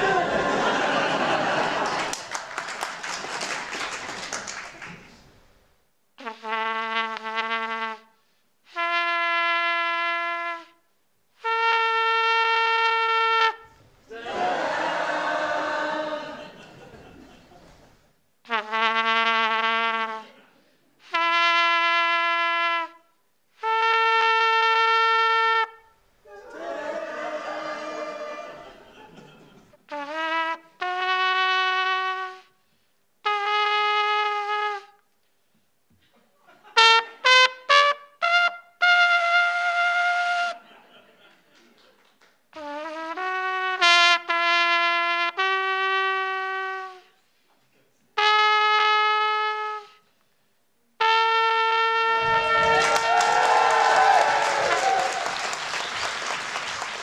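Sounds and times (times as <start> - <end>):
solo trumpet notes: 6.2 - 10.8, 11.4 - 13.8, 18.4 - 20.3, 21.0 - 26.0, 29.9 - 32.6, 33.2 - 35.1, 36.8 - 40.6, 42.5 - 47.2, 48.2 - 50.0, 51.0 - 53.0.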